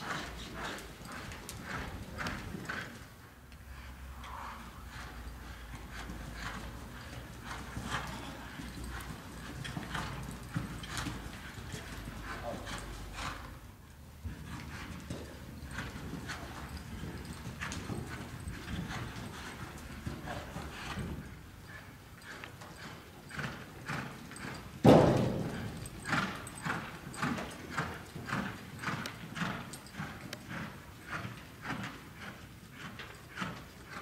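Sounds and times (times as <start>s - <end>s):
hoofbeats on soft dirt: 0.0s - 3.2s, 4.5s - 13.6s, 14.2s - 34.0s.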